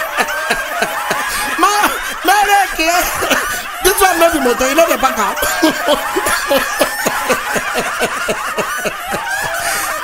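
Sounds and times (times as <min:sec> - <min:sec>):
person laughing: 0:00.0 - 0:10.0.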